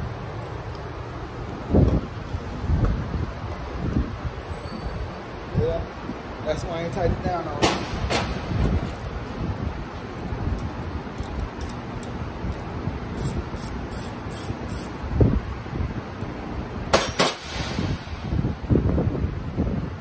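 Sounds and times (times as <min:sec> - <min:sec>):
workshop rumble: 0:00.0 - 0:19.3
ratchet wrench ticking: 0:10.6 - 0:14.9.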